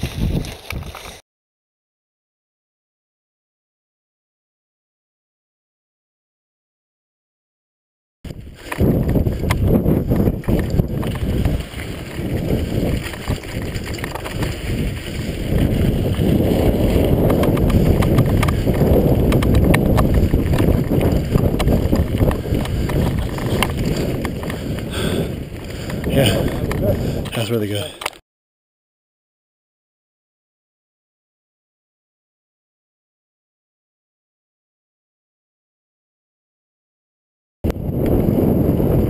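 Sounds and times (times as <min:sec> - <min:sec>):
wind rumble on microphone: 0:00.0 - 0:01.2, 0:08.3 - 0:27.6, 0:37.6 - 0:39.0
bike rattling and knocking: 0:08.3 - 0:27.4.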